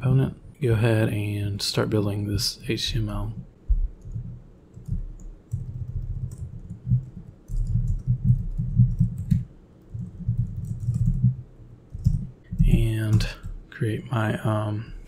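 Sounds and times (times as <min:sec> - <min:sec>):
computer keyboard typing: 0:04.0 - 0:13.6.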